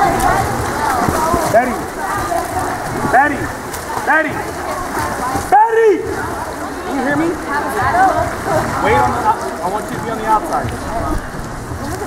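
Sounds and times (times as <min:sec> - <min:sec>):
voices shouting: 0:00.0 - 0:11.4
water splashing: 0:00.0 - 0:12.0
man calling out: 0:05.5 - 0:06.0.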